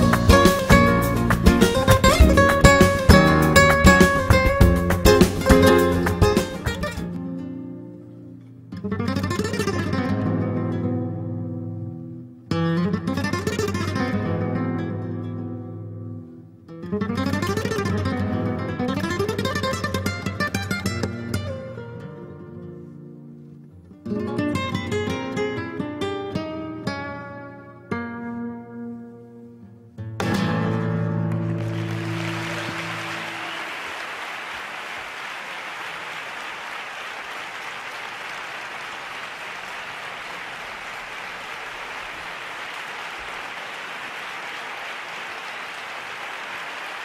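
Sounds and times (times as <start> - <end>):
flamenco guitar: 0.0 - 34.1.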